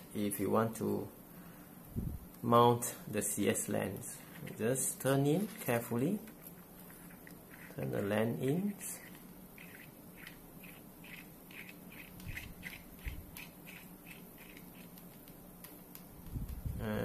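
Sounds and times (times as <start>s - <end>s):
lens threads squeaking: 9.0s - 15.2s.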